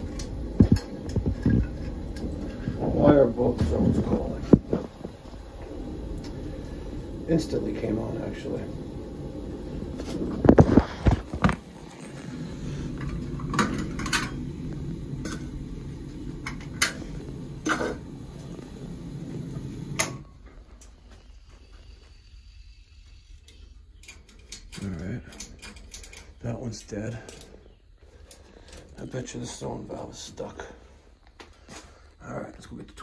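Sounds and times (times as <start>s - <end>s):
heating boiler rumbling: 0.0s - 33.0s.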